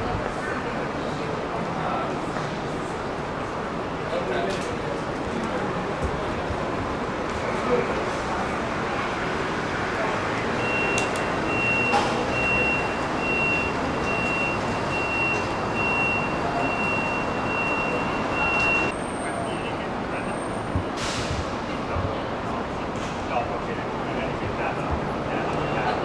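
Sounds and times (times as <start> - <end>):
city street traffic: 0.0 - 26.0
high electronic beeps: 10.6 - 18.9.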